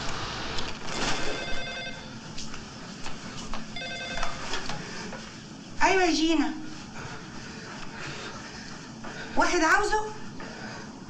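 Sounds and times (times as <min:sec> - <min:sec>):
telephone ringing: 0:01.1 - 0:02.2, 0:03.8 - 0:04.7.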